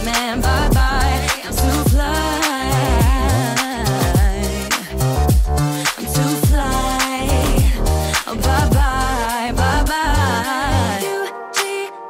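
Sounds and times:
pop song with vocals: 0:00.0 - 0:12.0.

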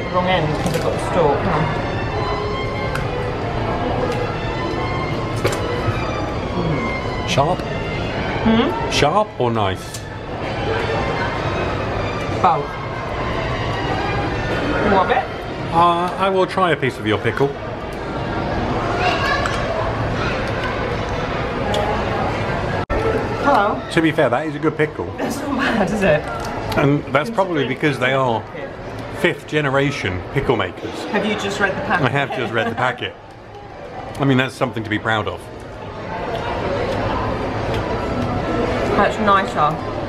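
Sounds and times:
background music: 0:00.0 - 0:24.5
chatter of many voices: 0:00.0 - 0:40.0.

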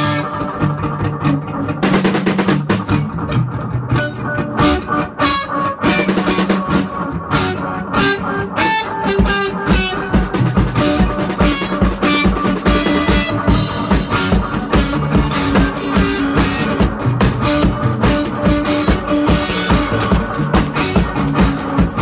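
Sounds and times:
steady kick drum beat: 0:00.0 - 0:05.0, 0:09.0 - 0:22.0
band playing guitar and drums: 0:00.0 - 0:22.0.

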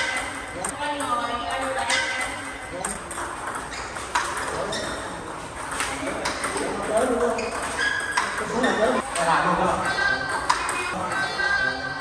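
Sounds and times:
table tennis ball striking paddles: 0:00.0 - 0:08.7, 0:10.3 - 0:10.9
table tennis ball bouncing on table: 0:00.0 - 0:09.3, 0:10.3 - 0:10.9.

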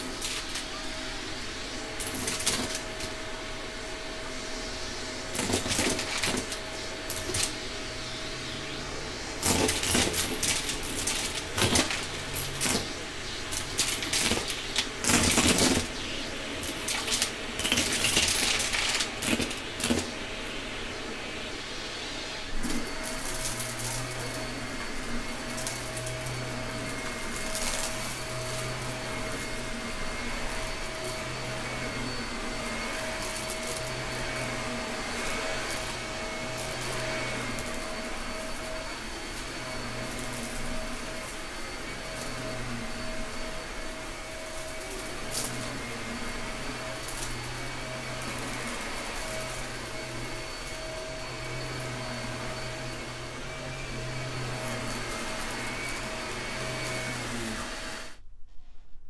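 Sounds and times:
vacuum cleaner running: 0:00.0 - 0:58.3.

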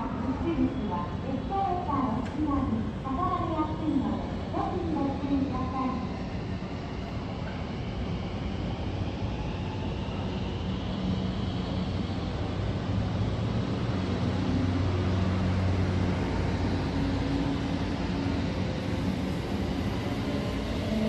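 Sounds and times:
electric train rumbling hum: 0:00.0 - 0:21.0
rising train motor whine: 0:00.0 - 0:21.0.

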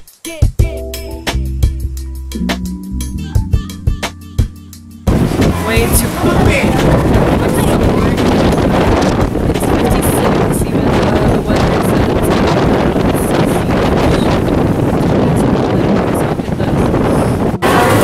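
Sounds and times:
wind buffeting microphone: 0:05.1 - 0:18.0.

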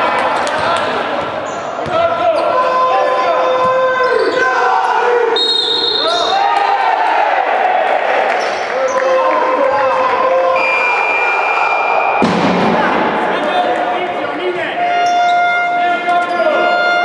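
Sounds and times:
sneakers squeaking on floor: 0:00.6 - 0:02.7.

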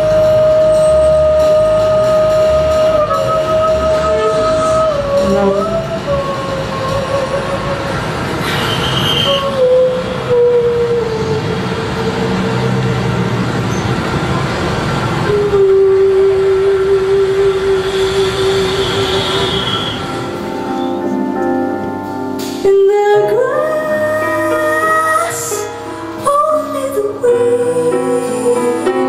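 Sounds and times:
saxophone long notes: 0:00.0 - 0:13.7, 0:14.4 - 0:25.8
dense noisy band wash: 0:00.0 - 0:29.0.

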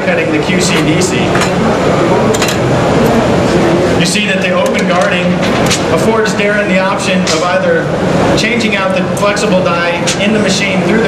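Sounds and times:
loud hall noise: 0:00.0 - 0:11.0.

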